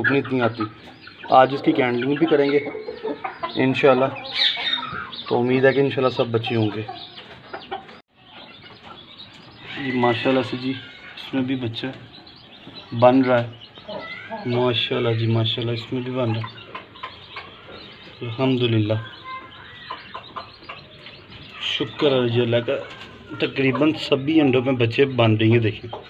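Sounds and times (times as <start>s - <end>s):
hen high calls: 0.0s - 5.8s, 6.5s - 24.3s
chicken clucking faintly: 0.0s - 26.0s.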